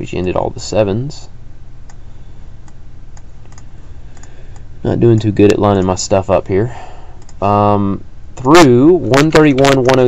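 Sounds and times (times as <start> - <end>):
low steady hum: 0.0 - 10.0
computer mouse and key clicks: 2.6 - 6.0, 7.2 - 7.4
person speaking: 4.8 - 10.0.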